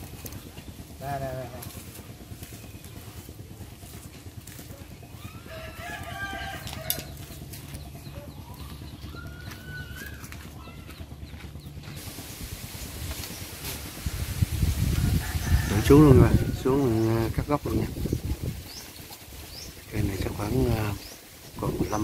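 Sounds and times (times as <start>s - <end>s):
low steady hum: 0.0s - 22.0s
rooster crowing: 5.2s - 7.3s, 14.8s - 17.0s.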